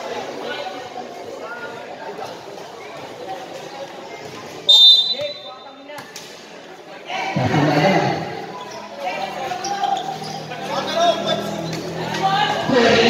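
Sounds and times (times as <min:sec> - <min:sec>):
voices and shouts in a hall: 0:00.0 - 0:13.0.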